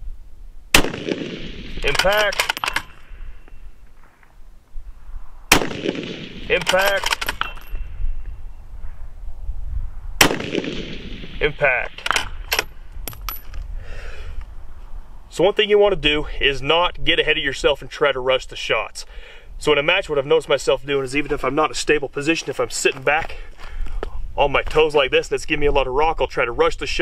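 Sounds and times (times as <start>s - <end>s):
rifle shot with long echo: 0.7s - 3.3s, 5.5s - 7.8s, 10.2s - 12.7s
rifle bolt clicking: 1.8s - 3.0s, 6.6s - 7.7s.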